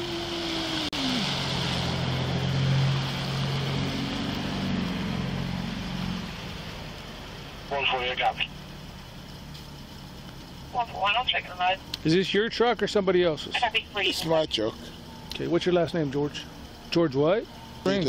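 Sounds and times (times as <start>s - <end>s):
vehicle passing on wet road: 0.0s - 12.5s, 13.2s - 18.0s
low engine hum: 0.0s - 18.0s.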